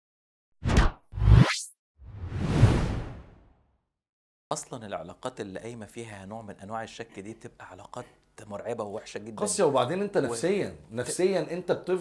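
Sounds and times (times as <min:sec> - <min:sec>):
whooshes: 0:00.6 - 0:03.5.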